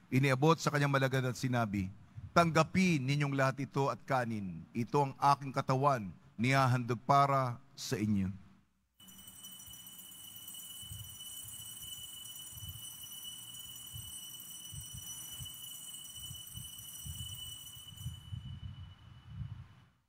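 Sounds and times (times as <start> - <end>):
bell ringing high tones: 9.0 - 19.5.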